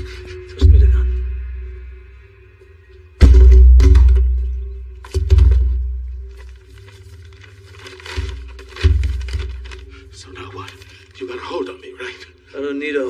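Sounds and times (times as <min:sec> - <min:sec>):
sustained low drone: 0:00.0 - 0:07.6
deep booming hits: 0:03.2 - 0:06.0.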